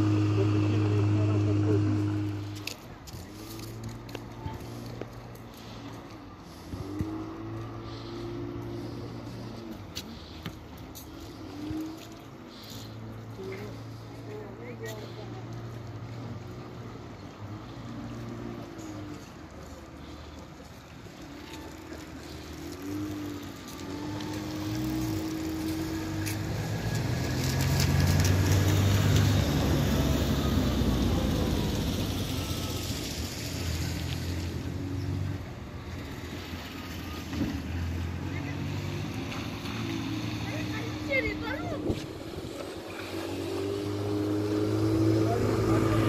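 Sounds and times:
outboard motor running: 0:00.0 - 0:16.2, 0:39.1 - 0:46.0
wind: 0:00.0 - 0:46.0.

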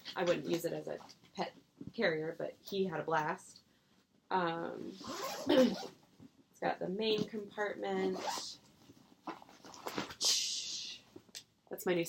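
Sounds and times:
fabric bag handling: 0:08.1 - 0:08.4.

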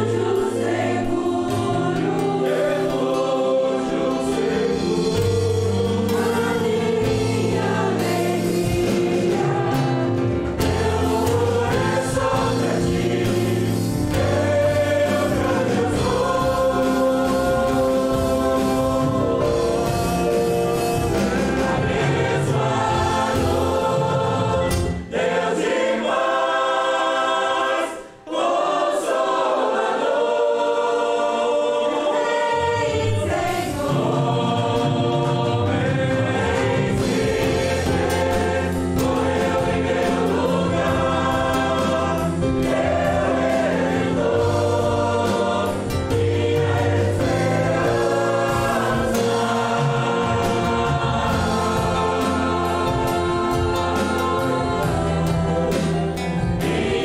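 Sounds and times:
guitar: 0:00.0 - 0:25.2, 0:33.2 - 0:57.0
cello: 0:00.0 - 0:26.0, 0:31.8 - 0:57.0
drum kit: 0:00.0 - 0:26.2, 0:32.2 - 0:57.0
group singing a hymn: 0:00.0 - 0:57.0
keyboard: 0:00.0 - 0:57.0
bass guitar: 0:04.4 - 0:25.0, 0:34.3 - 0:57.0.

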